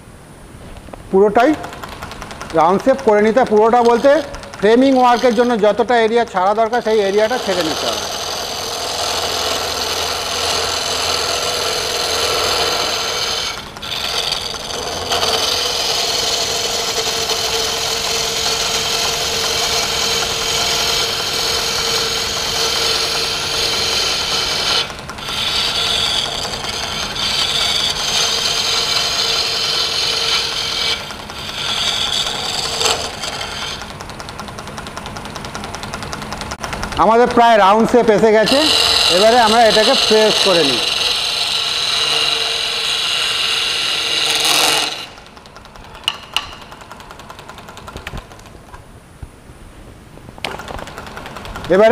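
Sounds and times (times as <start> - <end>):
lathe chisel scraping wood: 1.2 - 48.4.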